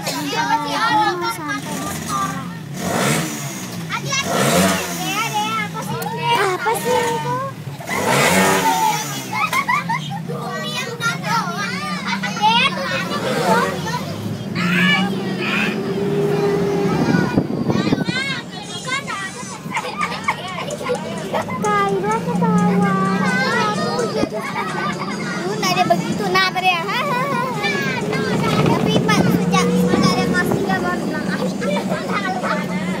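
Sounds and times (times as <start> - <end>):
bus engine drone: 0.0 - 33.0
children chattering and calling: 0.0 - 33.0.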